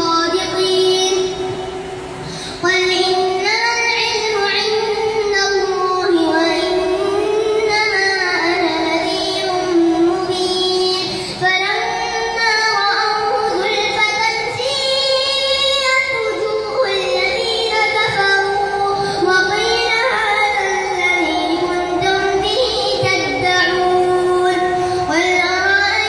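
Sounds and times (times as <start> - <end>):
boy reciting in melodic chant: 0.0 - 26.0.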